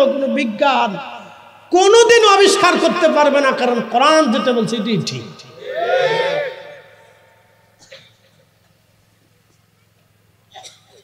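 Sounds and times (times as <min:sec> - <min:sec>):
man preaching into microphones: 0:00.0 - 0:05.6.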